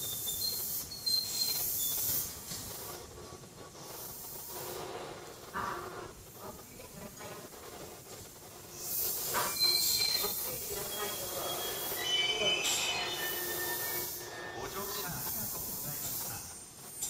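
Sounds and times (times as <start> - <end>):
train wheels squealing: 0.0 - 2.5, 8.8 - 16.4
steady hiss: 0.0 - 17.0.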